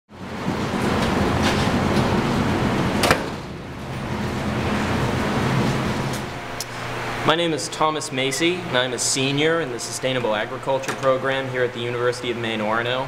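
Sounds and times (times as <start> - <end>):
low hum: 0.1 - 10.8
steady rushing noise: 0.2 - 8.7.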